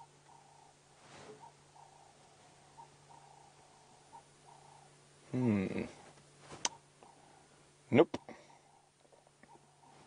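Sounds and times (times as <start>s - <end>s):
faint low hum: 0.0s - 10.0s
man speaking: 7.9s - 8.3s.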